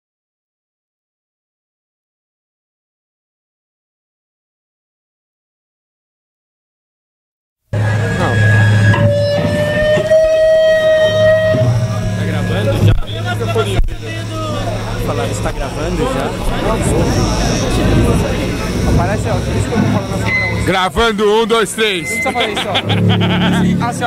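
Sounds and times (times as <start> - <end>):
electric guitar note ringing: 7.8 - 23.8
guitar amplifier hum: 7.8 - 24.0
voices chattering: 7.8 - 24.0.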